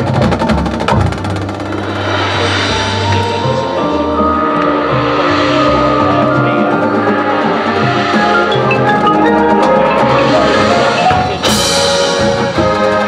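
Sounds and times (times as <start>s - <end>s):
drum and mallet percussion strikes: 0.0s - 13.0s
marching band playing: 0.0s - 13.0s
wind instruments holding chords: 1.2s - 13.0s.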